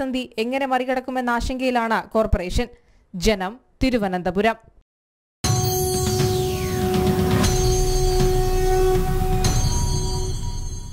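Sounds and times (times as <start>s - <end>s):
sharp musical hits: 5.4s - 10.9s.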